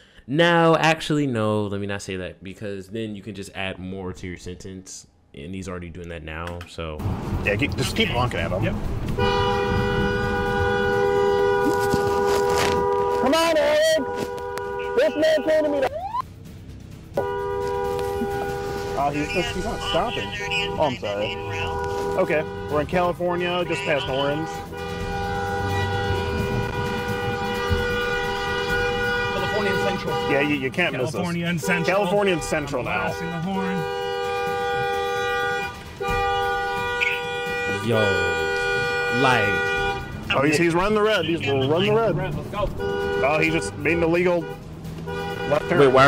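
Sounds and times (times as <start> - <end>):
voices: 0.5 - 8.8, 13.2 - 16.2, 18.0 - 44.6, 45.2 - 46.0
car horn two-note blare: 9.2 - 15.9, 17.2 - 40.4, 42.6 - 46.0.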